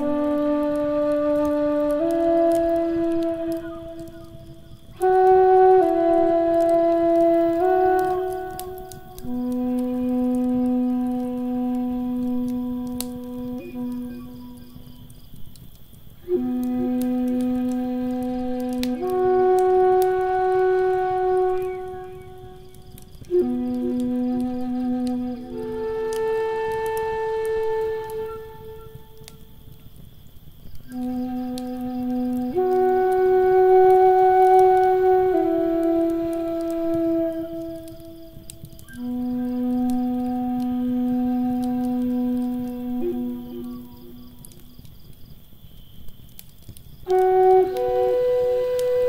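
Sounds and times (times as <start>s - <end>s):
flute playing long notes: 0.0s - 15.2s, 16.2s - 29.8s, 30.9s - 44.7s, 47.0s - 49.0s
wood fire crackling: 0.0s - 49.0s.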